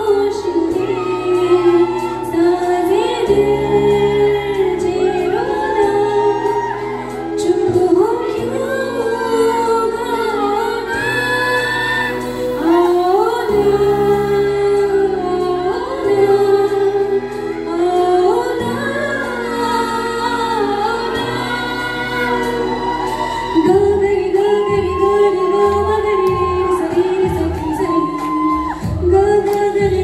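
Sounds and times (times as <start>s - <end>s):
woman singing into a microphone: 0.0s - 30.0s.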